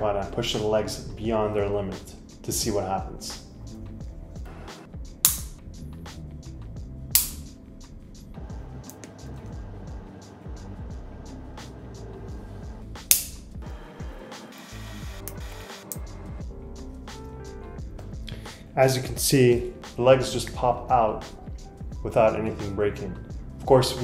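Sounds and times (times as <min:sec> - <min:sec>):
background music: 0:00.0 - 0:24.0
tripod hinge clicks: 0:05.2 - 0:05.6, 0:07.2 - 0:07.5, 0:13.1 - 0:13.4.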